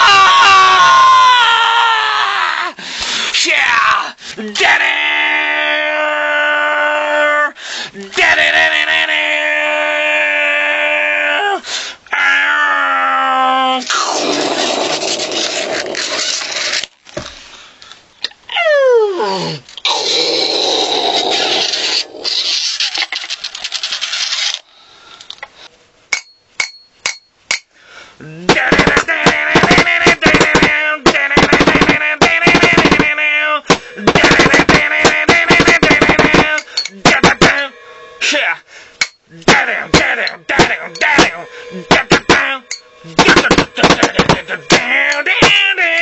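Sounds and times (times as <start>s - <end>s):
heavy rap-metal music: 33.7s - 46.0s.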